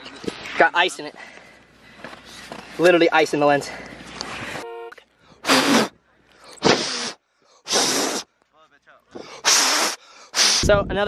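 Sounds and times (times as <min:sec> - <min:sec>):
breath puffs on microphone: 0:05.4 - 0:08.3, 0:09.1 - 0:10.8.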